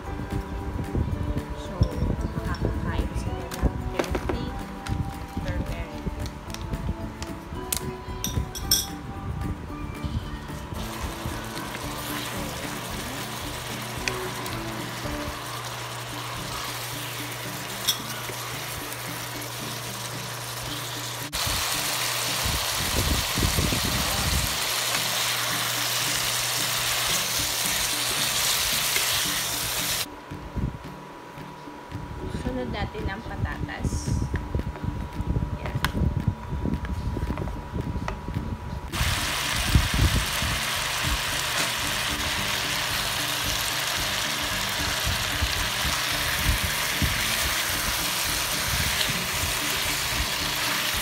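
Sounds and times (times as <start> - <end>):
chicken sizzling in a wok: 10.8 - 30.1, 38.9 - 51.0.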